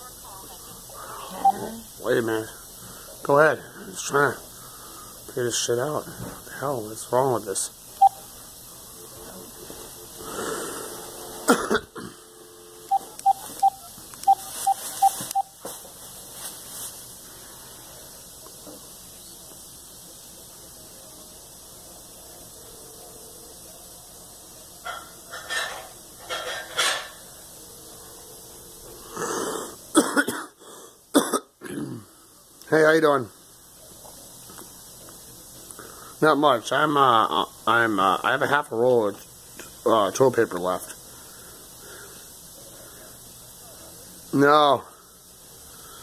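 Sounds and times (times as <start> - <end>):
short electronic beeps: 1.4 - 1.7, 8.0 - 8.2, 12.9 - 15.6
person coughing: 11.5 - 12.2, 29.9 - 30.6, 31.2 - 32.1
person clearing throat: 11.5 - 12.3, 29.2 - 32.1.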